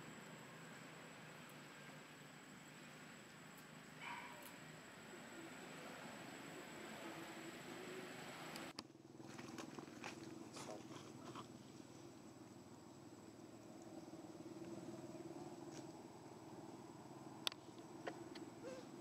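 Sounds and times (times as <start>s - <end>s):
faint low hum: 0.0s - 19.0s
small clicks and rustles: 8.5s - 11.6s.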